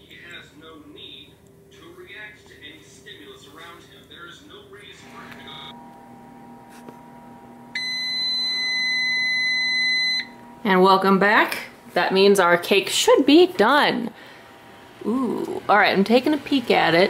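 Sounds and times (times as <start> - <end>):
low steady hum: 0.0 - 17.0
kitchen timer beep: 7.8 - 10.4.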